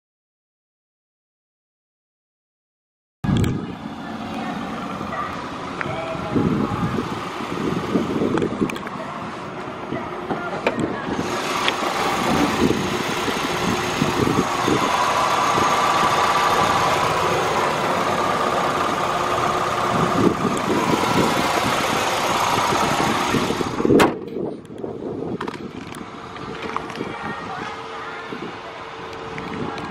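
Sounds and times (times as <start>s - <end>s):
car engine idling: 3.6s - 24.0s.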